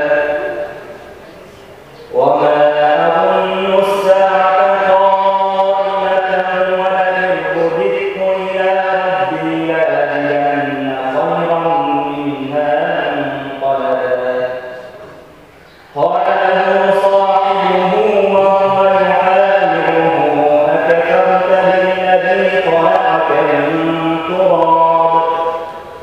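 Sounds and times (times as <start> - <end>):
man chanting recitation: 0.0 - 26.0.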